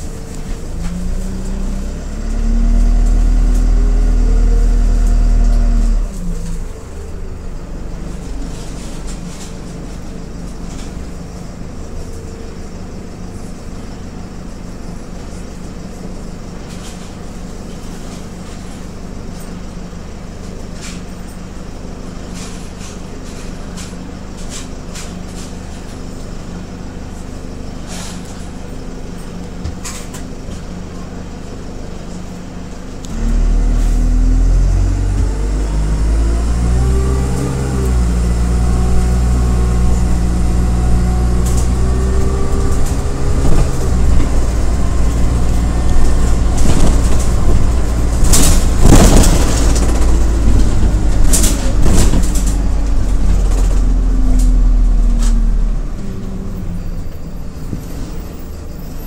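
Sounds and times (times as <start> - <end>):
bus diesel engine: 0.0 - 59.0.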